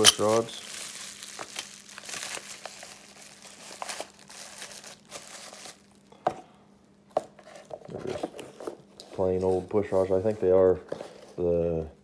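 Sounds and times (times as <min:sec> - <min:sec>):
bubble wrap crinkling: 0:00.0 - 0:06.1.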